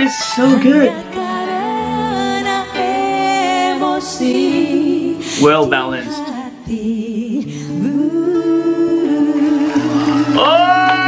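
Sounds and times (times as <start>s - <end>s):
women singing in harmony: 0.3s - 11.0s.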